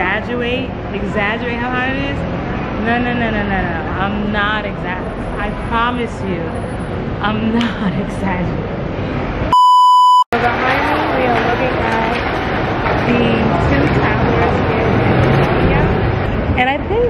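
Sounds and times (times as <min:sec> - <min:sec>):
busy street hubbub: 0:00.0 - 0:09.6, 0:10.3 - 0:17.0
loud steady bleep tone: 0:09.5 - 0:10.3
many voices talking: 0:10.4 - 0:17.0.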